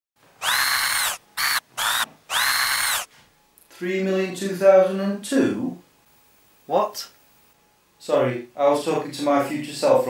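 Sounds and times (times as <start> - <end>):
electric whirring: 0.4 - 3.1.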